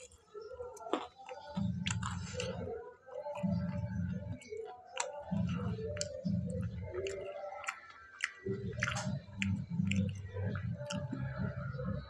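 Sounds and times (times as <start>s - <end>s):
muffled chewing: 0.0s - 12.0s
crisp food crunches: 4.4s - 10.2s.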